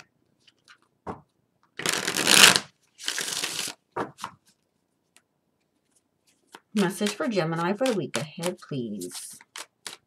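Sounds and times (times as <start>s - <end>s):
cards being shuffled: 1.8s - 10.0s.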